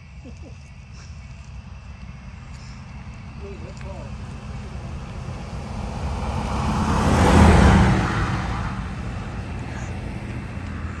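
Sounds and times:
vehicle driving past: 4.0s - 11.0s.

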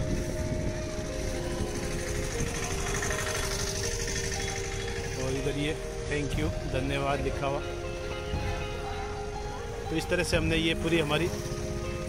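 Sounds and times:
wind on microphone: 0.0s - 6.8s
road traffic rumble: 0.0s - 12.0s.

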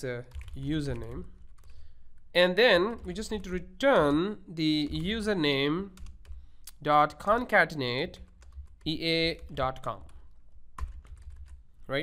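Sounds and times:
computer keyboard keystrokes: 10.8s - 11.6s.

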